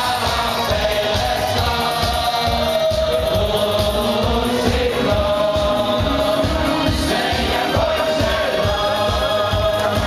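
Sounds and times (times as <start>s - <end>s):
choir singing held notes: 0.0s - 10.0s
music with pulsing beat: 0.0s - 10.0s.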